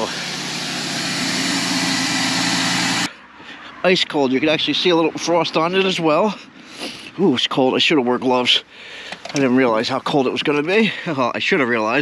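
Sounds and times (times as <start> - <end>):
car engine idling: 0.0 - 3.1.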